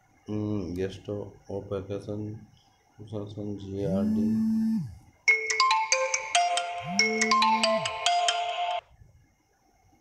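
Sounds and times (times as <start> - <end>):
low buzz: 3.8 - 5.0
phone ringtone melody: 5.3 - 8.8.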